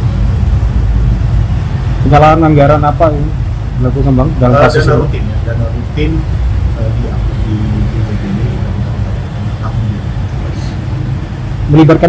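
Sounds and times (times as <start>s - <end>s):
low room rumble: 0.0s - 12.0s
faint voices murmuring: 3.8s - 12.0s.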